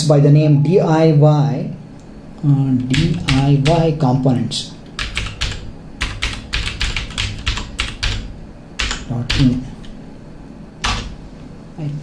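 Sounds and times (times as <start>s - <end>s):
typing on computer keyboard: 2.8s - 3.9s, 4.8s - 10.0s, 10.8s - 11.2s.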